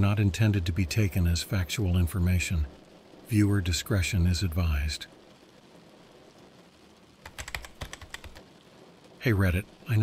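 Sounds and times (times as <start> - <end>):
faint steady hiss: 0.0 - 10.0
fast typing on keyboard: 7.2 - 8.4.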